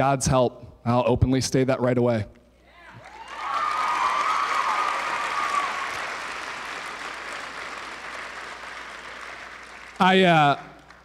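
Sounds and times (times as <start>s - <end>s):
audience applauding: 3.0s - 11.0s.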